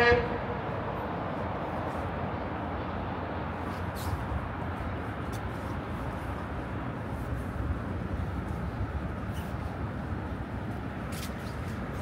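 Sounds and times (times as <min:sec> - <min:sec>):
loud horn steady note: 0:00.0 - 0:00.6.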